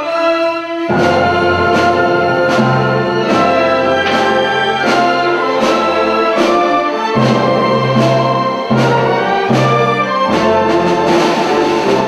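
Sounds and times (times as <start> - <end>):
strings: 0.0 - 12.0
woodwinds: 0.0 - 12.0
accented beat: 0.9 - 9.2.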